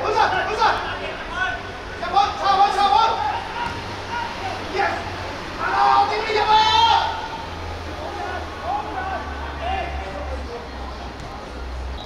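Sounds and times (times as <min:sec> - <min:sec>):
footballers shouting: 0:00.0 - 0:10.4.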